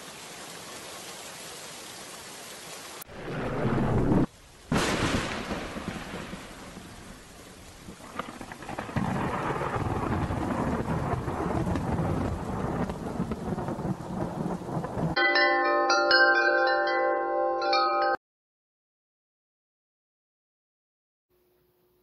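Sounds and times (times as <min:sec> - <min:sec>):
rain: 0:00.0 - 0:15.2
rolling thunder: 0:03.1 - 0:15.2
wind chimes ringing: 0:15.2 - 0:18.2.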